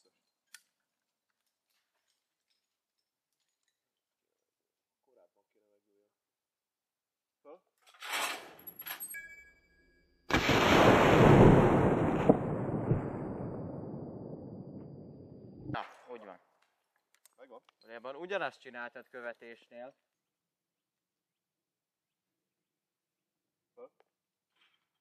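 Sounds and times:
gunshot: 10.3s - 14.9s.

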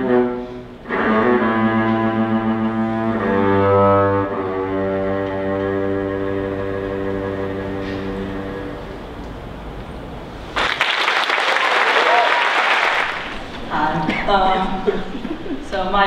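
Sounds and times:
cello bowed note: 0.0s - 9.1s
audience applause: 10.6s - 13.7s.

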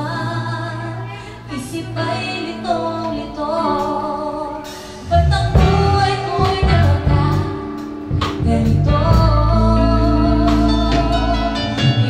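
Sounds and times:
woman singing lead: 0.0s - 12.0s
worship band playing: 0.0s - 12.0s
bass and drums: 4.6s - 12.0s.

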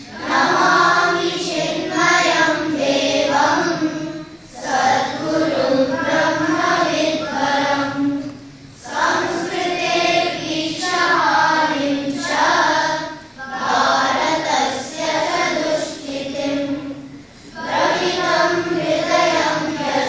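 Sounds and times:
children chanting in unison: 0.0s - 20.0s.

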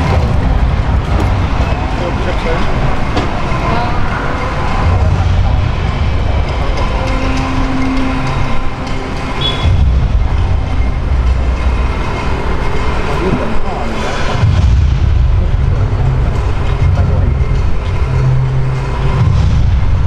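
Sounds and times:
indistinct voices: 0.0s - 20.0s
low rumble of road traffic: 0.0s - 20.0s.

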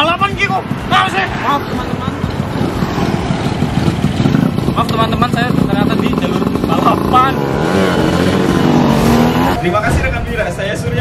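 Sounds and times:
scooter engines passing: 0.0s - 9.8s.

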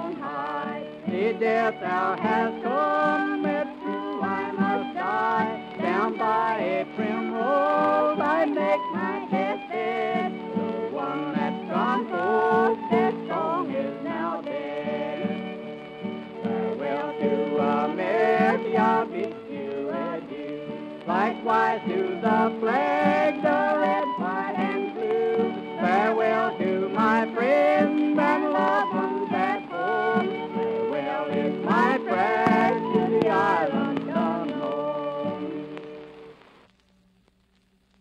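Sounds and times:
fiddle tune: 0.0s - 36.3s
guitar chords: 0.0s - 36.4s.

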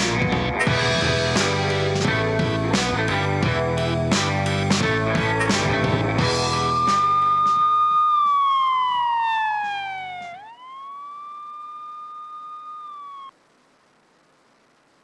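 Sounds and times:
rock music sting: 0.0s - 7.6s
siren wail: 6.2s - 13.4s.

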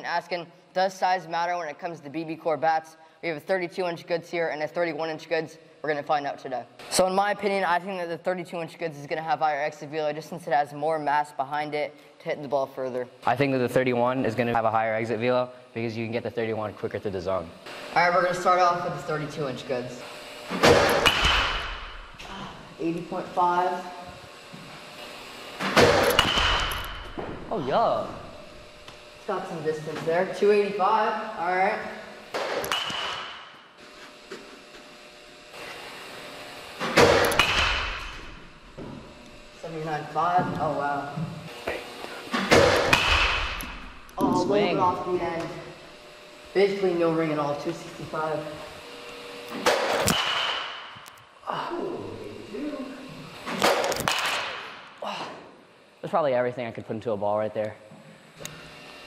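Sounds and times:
bat hitting baseball: 20.6s - 21.8s, 25.6s - 27.4s, 32.3s - 33.5s, 36.9s - 38.3s, 42.4s - 43.6s, 49.6s - 51.0s, 53.5s - 54.8s.

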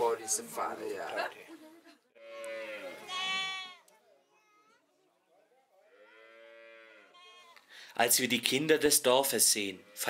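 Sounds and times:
farm animal calling: 2.2s - 3.9s, 5.8s - 7.6s, 9.7s - 10.0s.

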